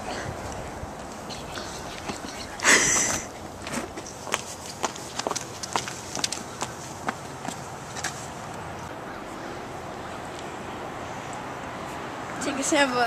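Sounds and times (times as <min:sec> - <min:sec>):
footsteps on asphalt: 0:03.2 - 0:08.9.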